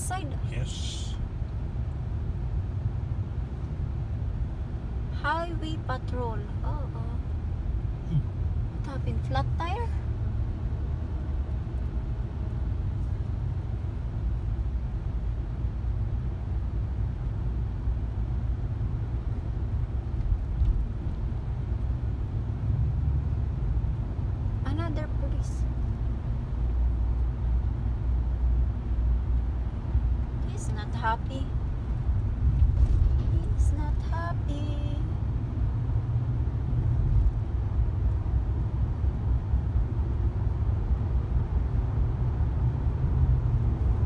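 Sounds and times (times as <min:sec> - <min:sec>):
car road and engine rumble: 0:00.0 - 0:44.0.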